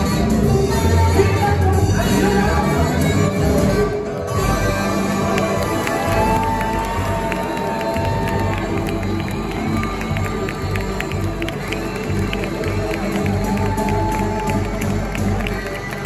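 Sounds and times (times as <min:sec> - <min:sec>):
live jazz band playing: 0:00.0 - 0:16.0
crowd cheering: 0:04.8 - 0:16.0.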